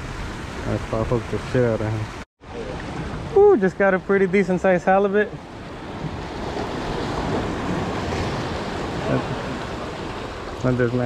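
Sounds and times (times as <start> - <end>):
ocean surf washing against rocks: 2.6 - 11.0.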